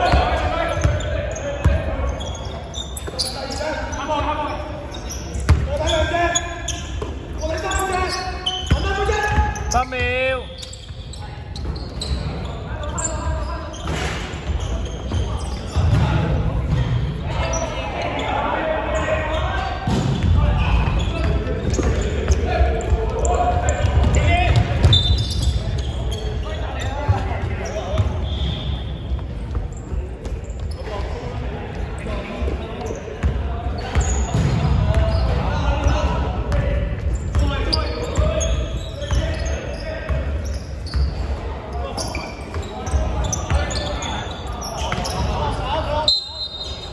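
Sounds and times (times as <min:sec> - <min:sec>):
players calling out: 0:00.0 - 0:46.9.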